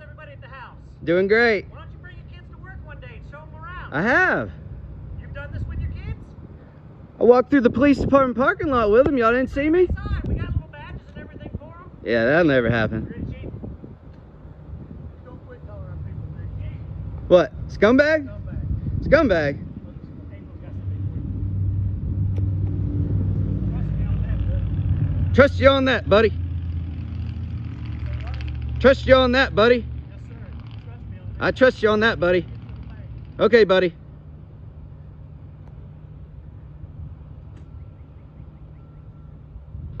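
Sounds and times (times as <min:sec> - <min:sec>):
vehicle engine humming: 0:00.0 - 0:40.0.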